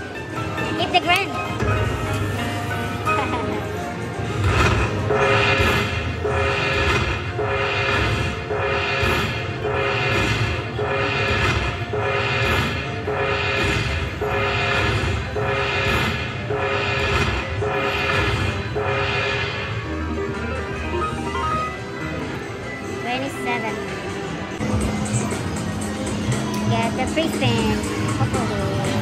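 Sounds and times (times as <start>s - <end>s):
slot machine win music: 0.0s - 23.0s.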